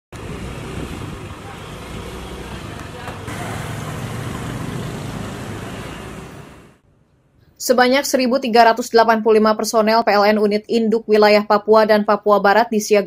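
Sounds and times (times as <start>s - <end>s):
roadside traffic: 0.1s - 7.4s.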